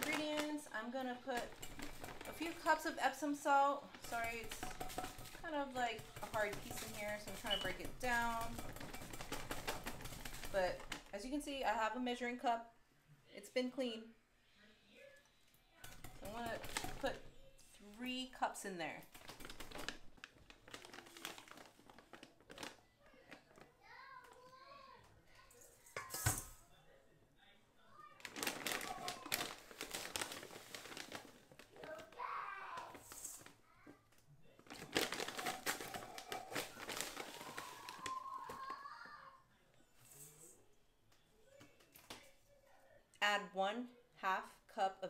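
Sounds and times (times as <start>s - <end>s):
plastic bag crinkling: 0.0s - 3.2s, 3.8s - 11.1s, 19.0s - 23.7s, 28.2s - 33.6s, 34.6s - 38.8s.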